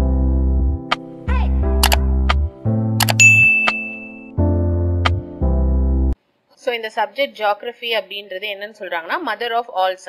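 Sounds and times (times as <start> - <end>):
background music: 0.0 - 6.2
sharp mouse clicks: 3.0 - 3.8
bright bell ding: 3.1 - 4.3.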